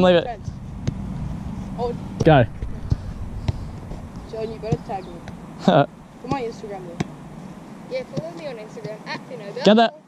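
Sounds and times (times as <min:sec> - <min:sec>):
soccer ball thudding on grass: 0:00.4 - 0:01.2, 0:06.2 - 0:07.5, 0:08.1 - 0:09.0.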